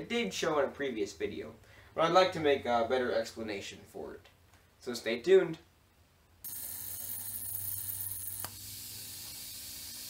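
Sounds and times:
high voltage hiss and hum: 0:06.4 - 0:10.0.

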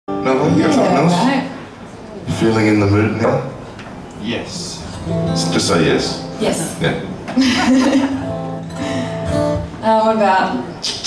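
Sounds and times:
acoustic guitar notes ringing: 0:04.8 - 0:07.3, 0:08.0 - 0:10.7
person laughing: 0:07.4 - 0:08.3.

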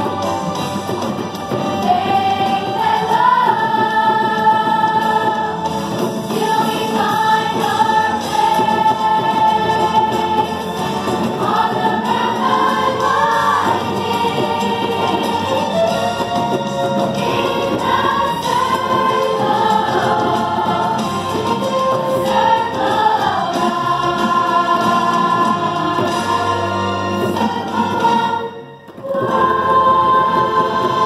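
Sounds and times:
choir of young people singing: 0:00.0 - 0:31.0.

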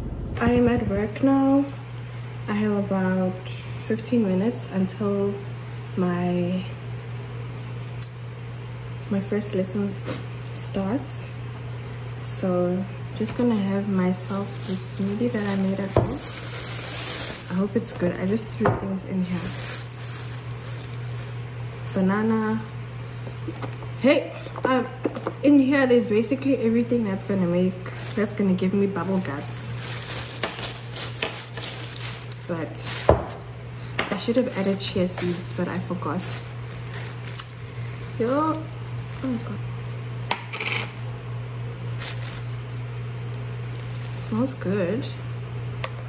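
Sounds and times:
low hum: 0:00.0 - 0:02.6
steady low hum: 0:00.0 - 0:46.0.

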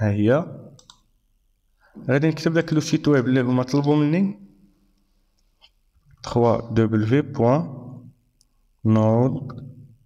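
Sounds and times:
faint computer mouse clicks: 0:00.8 - 0:01.0
man speaking: 0:02.0 - 0:04.5, 0:06.2 - 0:08.1, 0:08.8 - 0:09.9.

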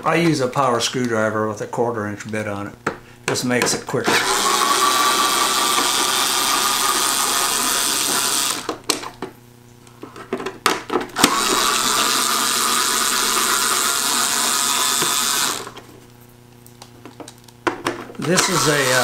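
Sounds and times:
cordless power screwdriver running: 0:04.0 - 0:08.8, 0:11.2 - 0:15.8, 0:18.2 - 0:19.0.

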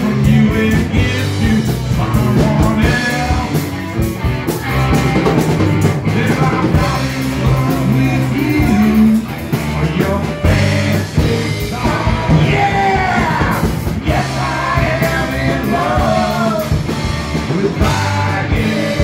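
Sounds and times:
person singing: 0:00.0 - 0:03.8, 0:05.9 - 0:19.0
drum kit beat: 0:00.0 - 0:19.0
electric guitars: 0:00.0 - 0:19.0
keyboards: 0:00.0 - 0:19.0.

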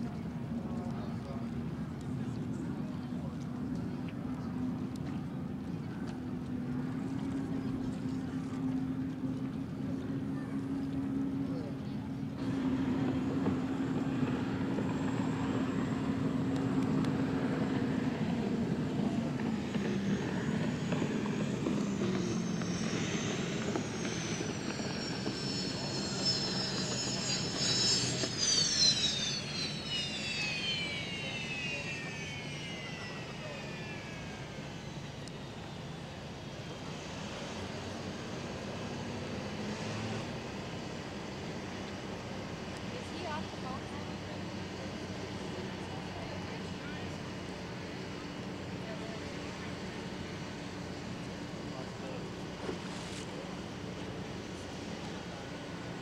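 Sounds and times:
turbine boat engine whine: 0:00.0 - 0:56.0.

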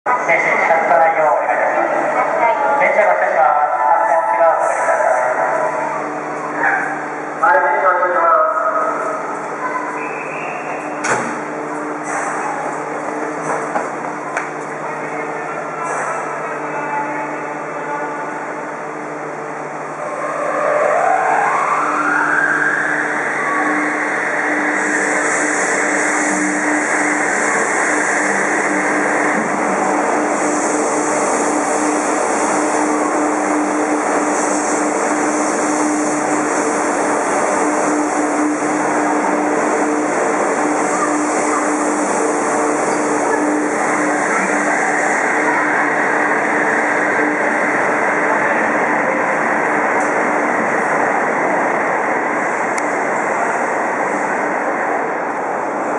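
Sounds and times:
train inverter whine: 0:00.0 - 0:55.9
train cars running noise: 0:00.1 - 0:55.9.

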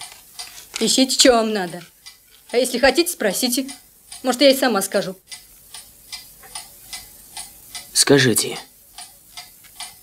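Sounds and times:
clock ticking: 0:00.0 - 0:10.0.

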